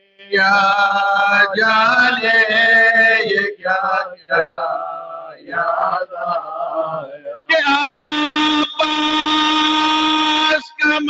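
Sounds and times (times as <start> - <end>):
man chanting a lament: 0.2 - 11.0.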